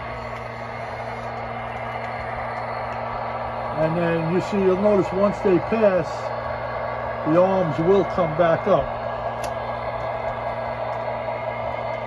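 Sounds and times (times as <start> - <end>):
constant low hum: 0.0 - 12.0
model train motors whirring: 0.0 - 12.0.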